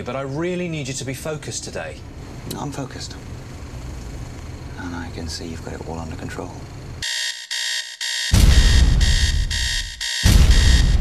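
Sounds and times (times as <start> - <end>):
electronic alarm beeping: 7.0 - 11.0.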